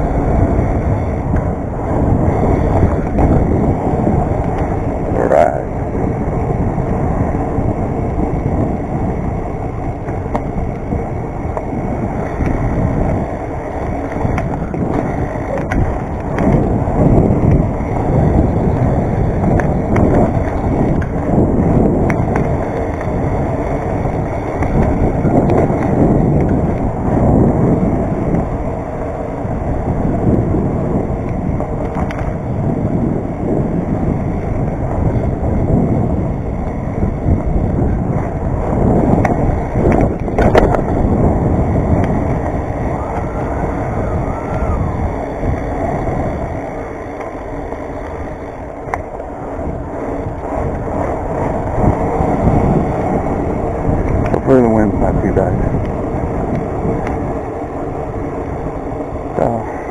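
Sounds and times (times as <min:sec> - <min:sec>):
bike tyres rumbling on concrete: 0:00.0 - 0:59.9
wind on microphone: 0:00.0 - 0:59.9.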